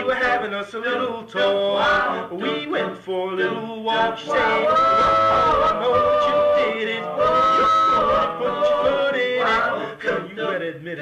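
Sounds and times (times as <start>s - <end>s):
male vocal group singing harmony: 0.0s - 11.0s.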